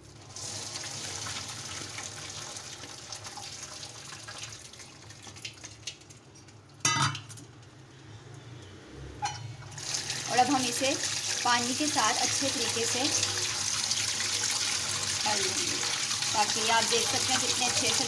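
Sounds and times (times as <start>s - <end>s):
water pouring into a colander: 0.0s - 6.3s, 9.7s - 18.0s.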